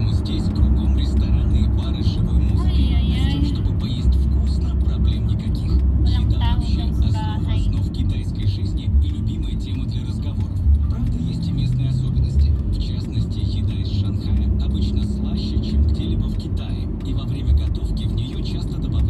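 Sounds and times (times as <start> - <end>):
car engine and road noise: 0.0 - 19.0
person speaking: 0.1 - 19.0.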